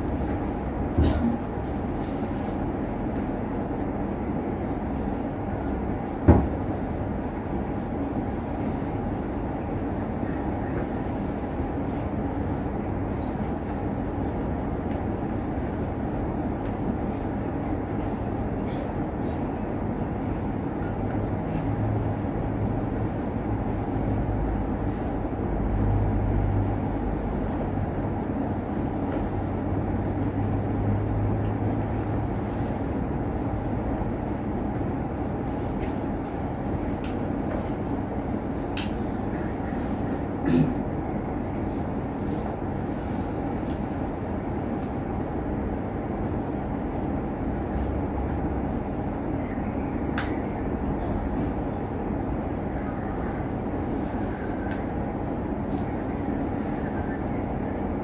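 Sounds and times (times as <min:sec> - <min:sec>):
background rumble and hiss: 0:00.0 - 0:58.0.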